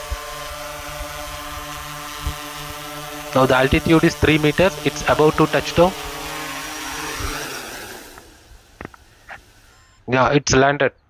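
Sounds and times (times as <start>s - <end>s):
drone motors humming: 0.0s - 10.3s.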